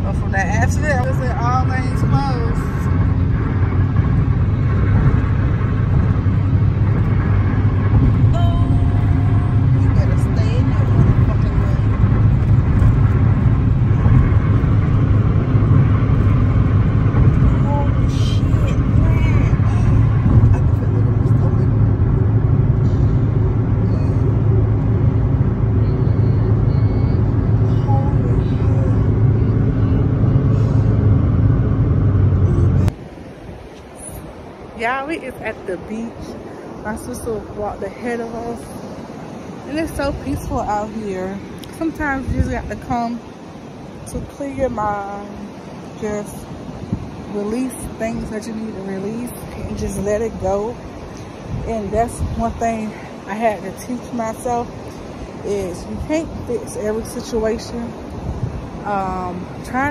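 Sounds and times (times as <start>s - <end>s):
car cabin road and engine rumble: 0.0s - 59.9s.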